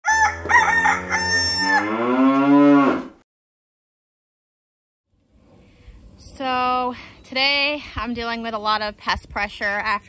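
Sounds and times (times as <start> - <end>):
rooster crowing: 0.0 - 3.0
cow mooing: 0.1 - 3.2.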